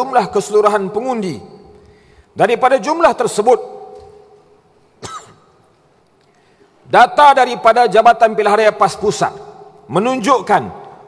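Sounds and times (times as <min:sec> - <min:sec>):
echoing speech: 0:00.0 - 0:04.7, 0:06.8 - 0:11.0
person coughing: 0:05.0 - 0:05.6.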